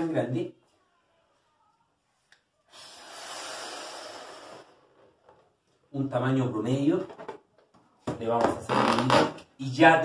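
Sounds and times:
air rushing into balloon: 0:02.7 - 0:04.9.

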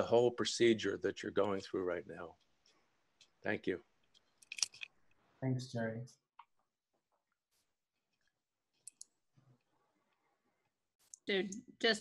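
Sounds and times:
man speaking: 0:00.0 - 0:02.3, 0:03.5 - 0:03.8
faint clicks: 0:08.8 - 0:10.3.

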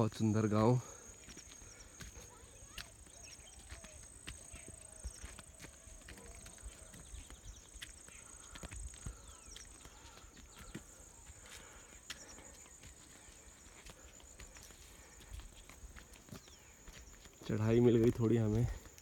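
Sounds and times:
footsteps on stone path: 0:00.0 - 0:19.0
insects buzzing: 0:00.0 - 0:19.0.

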